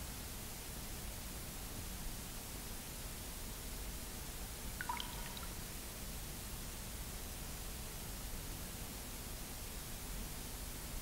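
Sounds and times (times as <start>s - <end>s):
faint high drip-like plinks: 4.8s - 5.8s
tape hiss: 4.8s - 5.9s.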